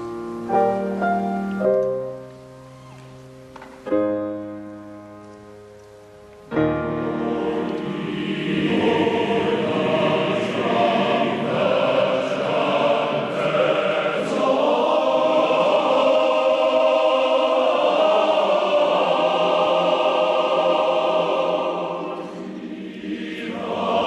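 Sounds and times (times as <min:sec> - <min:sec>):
men's choir singing in harmony: 0:06.7 - 0:24.0.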